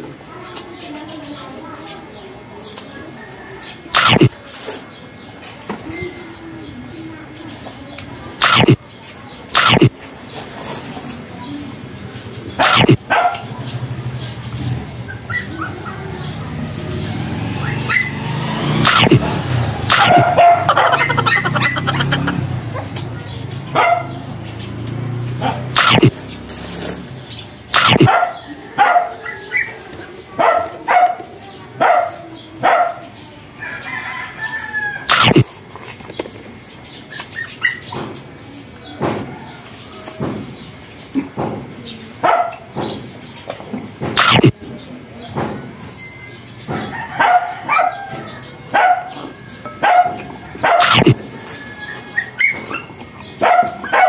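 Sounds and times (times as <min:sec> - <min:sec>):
dog barking: 0:12.6 - 0:13.5, 0:19.9 - 0:22.0, 0:23.7 - 0:24.2, 0:27.8 - 0:29.7, 0:30.4 - 0:33.1, 0:42.2 - 0:42.7, 0:47.2 - 0:48.1, 0:48.7 - 0:51.2, 0:52.2 - 0:54.0.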